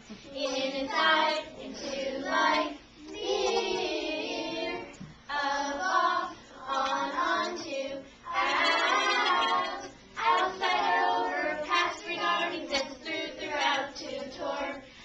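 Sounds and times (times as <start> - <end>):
children singing: 0.6 - 14.8.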